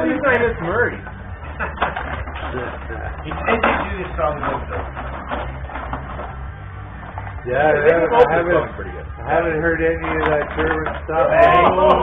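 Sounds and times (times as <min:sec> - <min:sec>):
rod hockey table clacking: 0:10.0 - 0:11.2.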